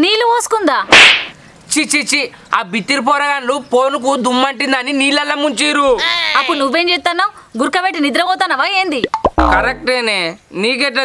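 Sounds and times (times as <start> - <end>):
loud sharp crack: 0.9 - 1.4.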